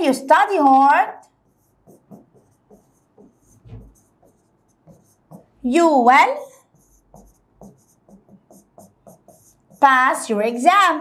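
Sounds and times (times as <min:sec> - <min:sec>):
stylus writing on glass: 0:01.3 - 0:10.6.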